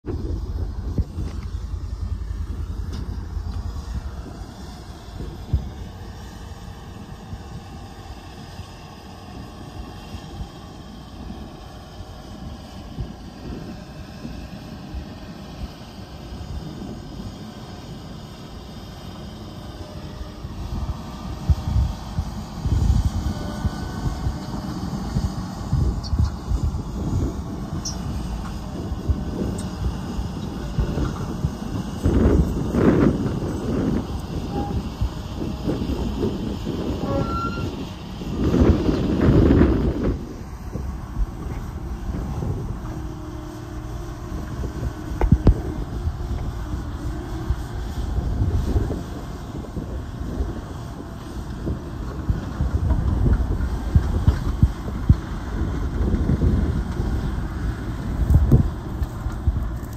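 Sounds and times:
diesel tractor engine under load: 0.0s - 59.9s
rubber tracks rolling over dirt: 37.9s - 59.9s.

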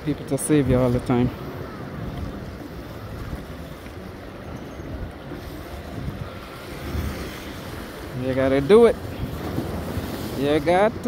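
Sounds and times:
wind rumbling on microphone: 0.0s - 11.0s
sea water washing against rocks: 5.2s - 11.0s.

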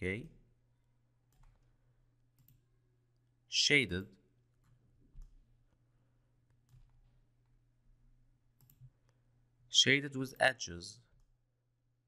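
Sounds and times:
computer mouse clicks: 2.3s - 2.6s, 8.6s - 9.2s.

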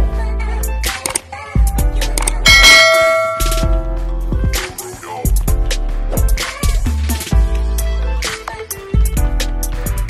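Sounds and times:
bell chime sound effect: 2.5s - 4.0s
intro music with bass beat: 2.5s - 4.8s.

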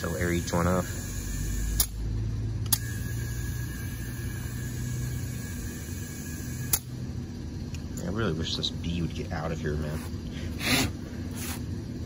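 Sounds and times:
compressed air flowing: 10.3s - 11.8s.

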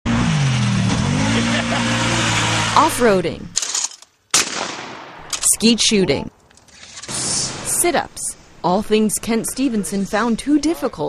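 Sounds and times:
utility vehicle engine running: 0.1s - 4.0s.

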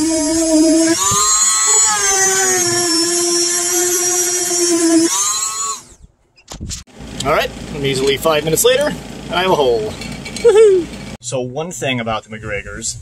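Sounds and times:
rotary tool whining: 0.0s - 6.1s.

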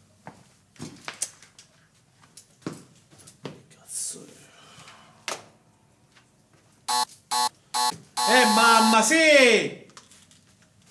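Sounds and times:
short electronic buzzer tones: 6.9s - 9.1s.

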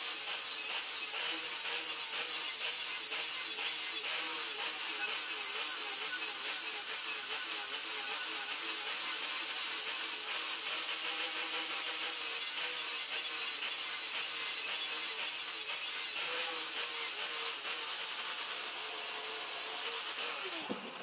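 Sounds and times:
angle grinder grinding steel: 0.0s - 21.0s.

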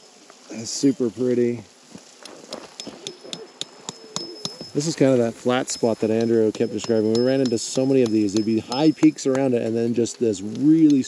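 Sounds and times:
thin steady high tone: 2.6s - 11.0s
light clicks and taps: 7.1s - 11.0s.

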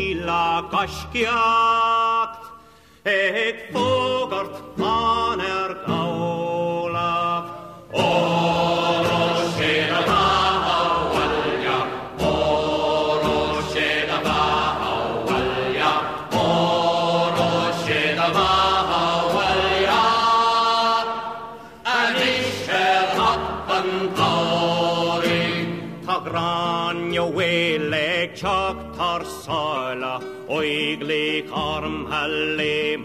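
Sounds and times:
song with sung vocals: 0.0s - 33.0s.

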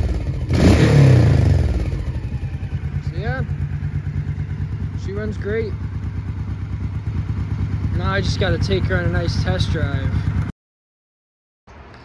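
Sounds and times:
motorcycle engine idling: 0.0s - 10.5s.

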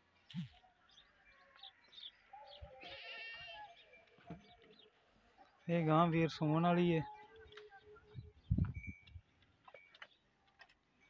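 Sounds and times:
faint animal bleating: 2.7s - 3.8s.

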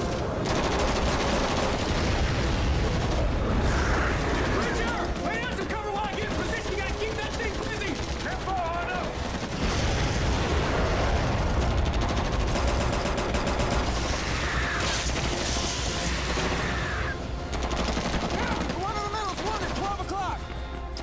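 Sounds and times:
people shouting: 16.1s - 17.2s.

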